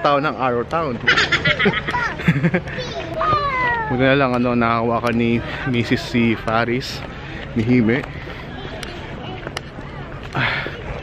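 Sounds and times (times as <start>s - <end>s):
human voices: 5.1s - 11.0s.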